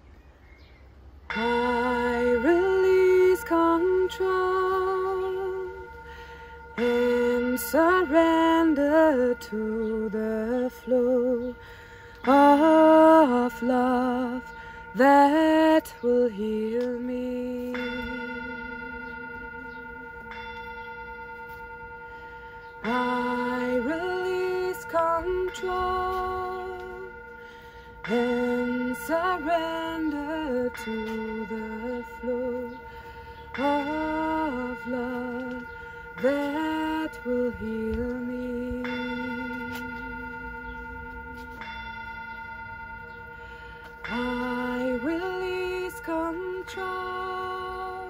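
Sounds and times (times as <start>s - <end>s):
metal singing bowl ringing: 1.3s - 48.0s.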